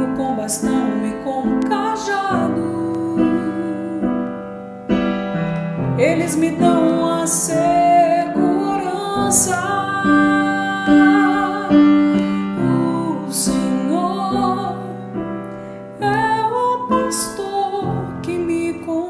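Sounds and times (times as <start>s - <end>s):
woman singing: 0.0s - 4.6s, 5.8s - 15.4s, 16.0s - 19.0s.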